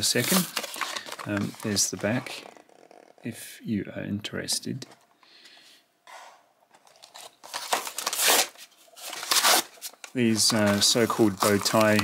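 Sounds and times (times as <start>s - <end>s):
cardboard rustling: 0.0s - 3.0s, 6.7s - 12.0s
cardboard ripping: 7.1s - 9.9s.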